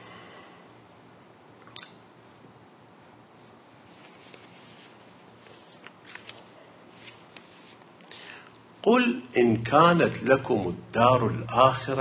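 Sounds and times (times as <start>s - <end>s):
paper crinkles: 3.8s - 7.9s
paper sheets rustling: 3.8s - 7.9s.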